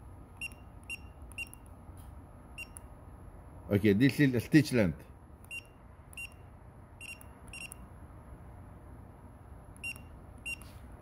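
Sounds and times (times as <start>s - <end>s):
short high beeps: 0.4s - 1.6s, 2.6s - 2.9s, 5.5s - 7.8s, 9.8s - 10.8s.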